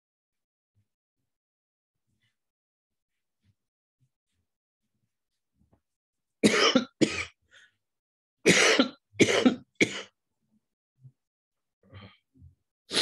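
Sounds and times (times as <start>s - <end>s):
man coughing: 6.4s - 7.4s, 8.5s - 10.1s.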